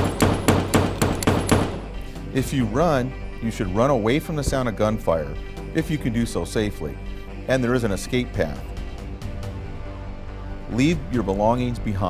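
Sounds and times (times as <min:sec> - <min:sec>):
rapid gunshots echoing: 0:00.0 - 0:01.9.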